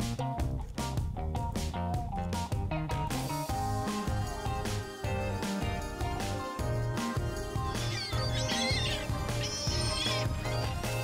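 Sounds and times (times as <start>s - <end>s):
upbeat background music: 0.0s - 11.0s
gulls calling: 7.2s - 11.0s.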